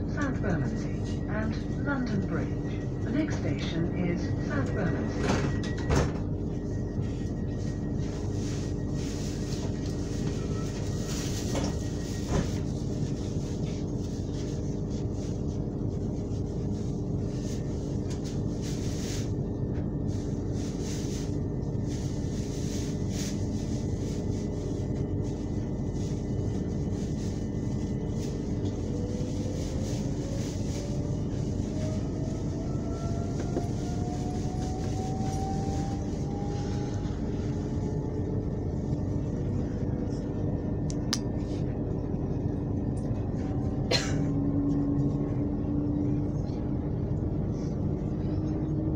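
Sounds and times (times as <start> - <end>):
constant train hum: 0.0 - 48.9
train wheels rumbling on track: 0.0 - 48.9
rising whine: 30.8 - 41.2.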